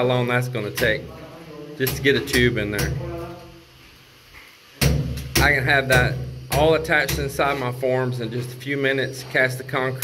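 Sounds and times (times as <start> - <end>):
man talking: 0.0 - 3.6, 5.4 - 10.0.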